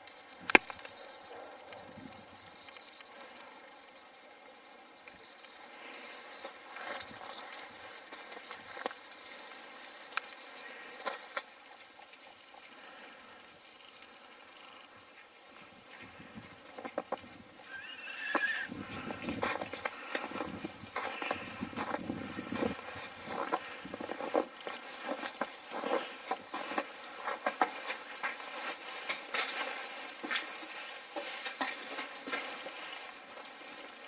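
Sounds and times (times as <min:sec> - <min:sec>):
footsteps on snow: 0:15.5 - 0:34.0.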